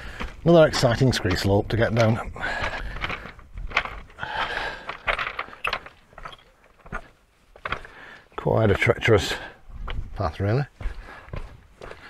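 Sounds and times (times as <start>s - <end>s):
stones clinking underfoot: 0.0s - 8.8s
boots crunching on scree: 0.0s - 12.0s.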